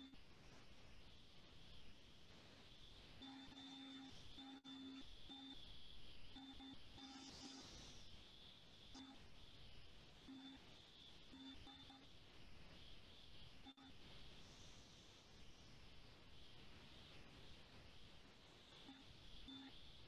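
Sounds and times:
faint room hiss: 0.0s - 20.0s.

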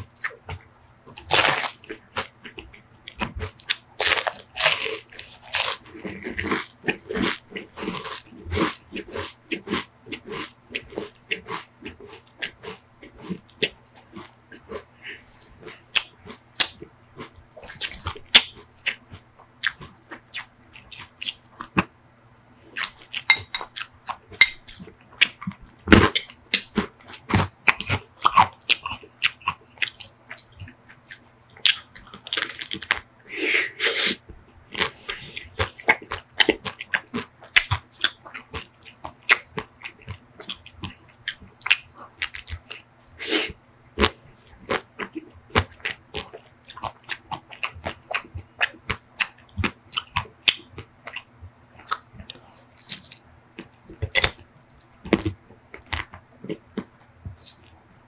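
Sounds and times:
crunching ice cream cone: 0.2s - 14.8s, 22.7s - 33.1s, 34.7s - 57.7s.

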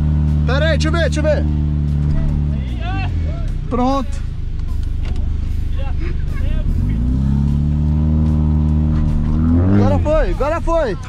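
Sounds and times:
car engine idling and revving: 0.0s - 11.0s.

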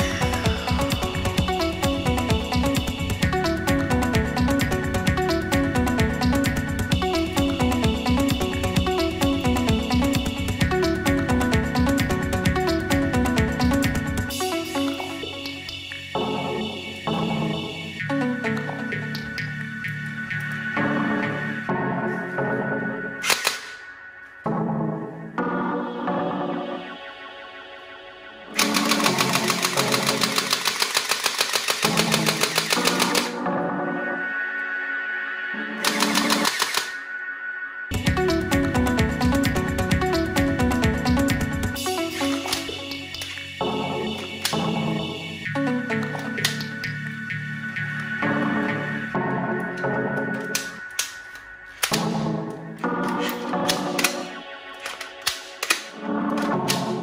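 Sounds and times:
background music: 0.0s - 57.0s
toy rifle rapid firing: 23.2s - 23.8s, 28.6s - 33.4s, 35.8s - 37.0s, 53.2s - 55.9s.

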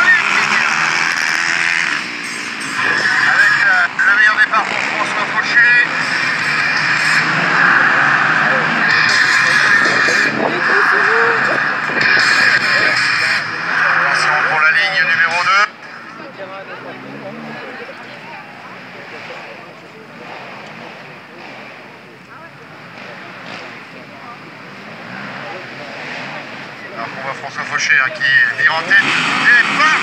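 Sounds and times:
quad engines revving: 0.0s - 30.0s.

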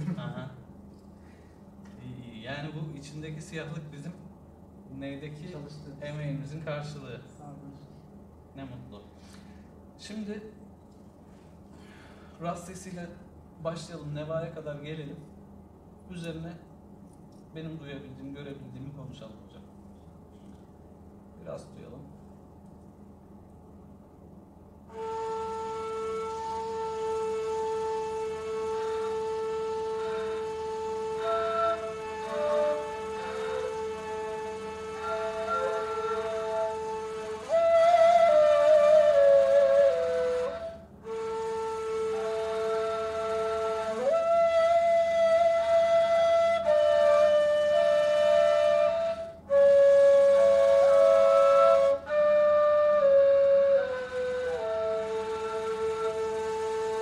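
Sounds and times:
end-blown reed flute long notes: 24.9s - 57.0s.

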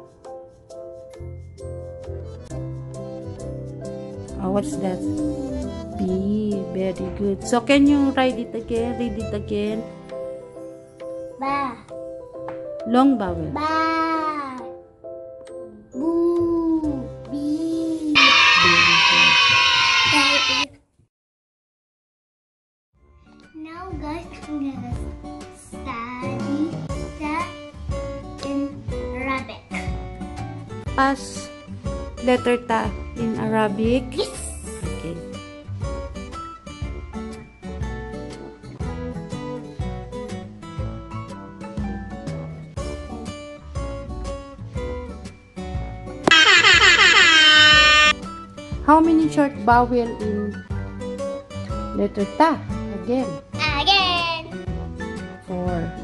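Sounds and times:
loud music: 18.2s - 20.4s, 46.3s - 48.1s
pitched tone sliding down: 18.2s - 20.6s, 46.3s - 48.1s.

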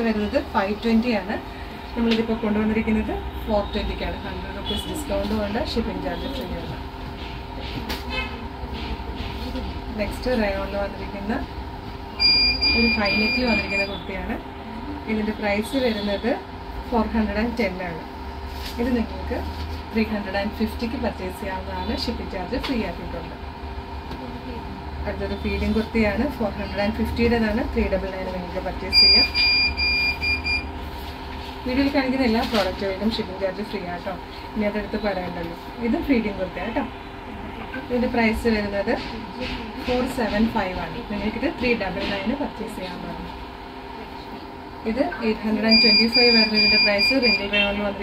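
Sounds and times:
steady background hum: 0.0s - 48.0s
electronic beeper short beeps: 12.2s - 14.0s, 28.9s - 30.7s, 45.1s - 47.7s.

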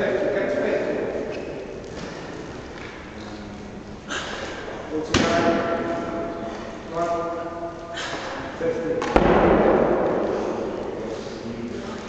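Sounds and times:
echo in large hall: 0.0s - 12.0s.

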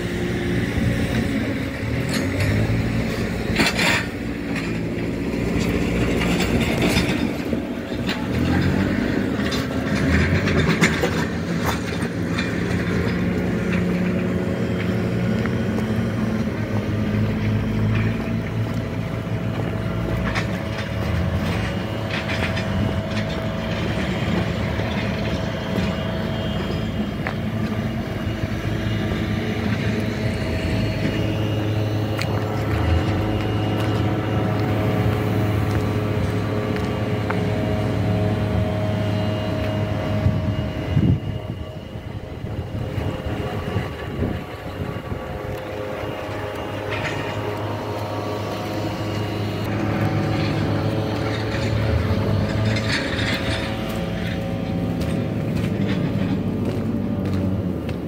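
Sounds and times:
vehicle engine running: 0.0s - 58.0s.

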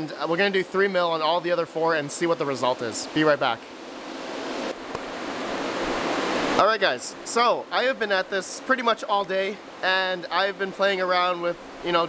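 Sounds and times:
cooling fans rushing: 0.0s - 12.0s.

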